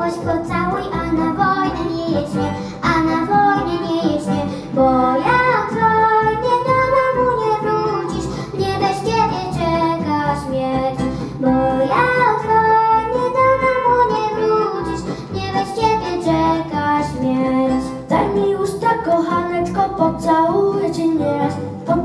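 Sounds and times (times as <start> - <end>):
children singing into microphones: 0.0 - 22.0
instrumental accompaniment: 0.0 - 22.0.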